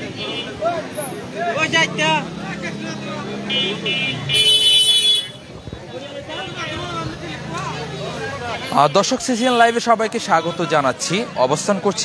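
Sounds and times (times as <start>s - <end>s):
market chatter: 0.0s - 12.0s
vehicle horn honking: 3.5s - 5.4s.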